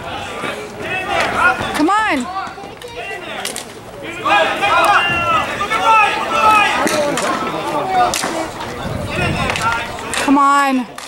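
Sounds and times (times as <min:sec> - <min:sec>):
spectator shouting: 0:00.0 - 0:08.2
players calling: 0:00.0 - 0:11.0.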